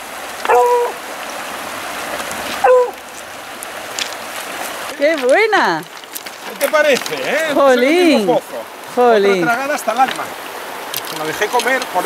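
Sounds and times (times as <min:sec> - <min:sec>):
shallow river over stones: 0:00.0 - 0:12.0
dog whining: 0:00.5 - 0:01.0, 0:02.6 - 0:03.0.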